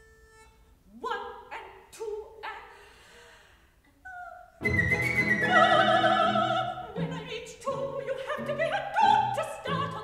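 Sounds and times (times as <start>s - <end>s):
chamber opera music notes: 0.0s - 10.0s.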